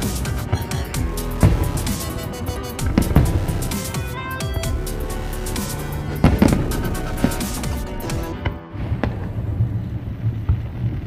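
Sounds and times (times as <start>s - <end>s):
fireworks bursting: 0.0s - 9.6s
music playing: 0.0s - 10.1s.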